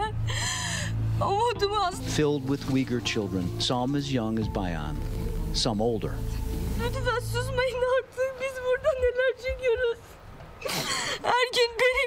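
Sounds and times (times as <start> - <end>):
woman crying: 0.0 - 1.7, 10.6 - 12.0.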